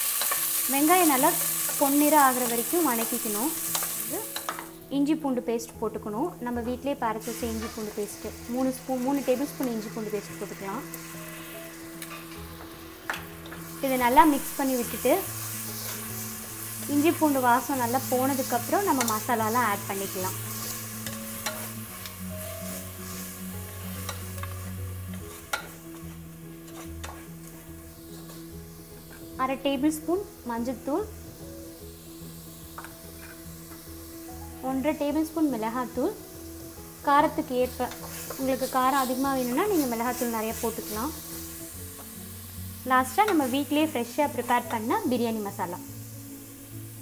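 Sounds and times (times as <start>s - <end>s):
onions sizzling in oil: 0.0s - 47.0s
soft background music: 0.0s - 47.0s
spatula scraping in pot: 18.3s - 28.5s, 33.1s - 33.4s.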